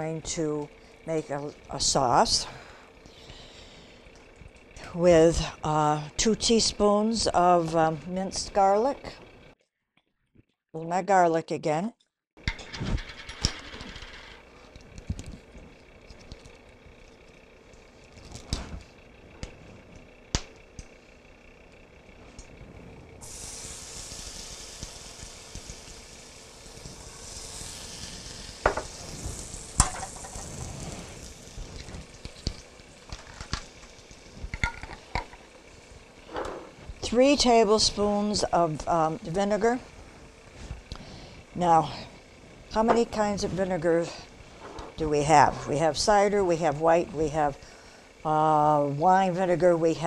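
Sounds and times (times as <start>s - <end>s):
garlic sizzling in a frying pan: 23.2s - 36.2s.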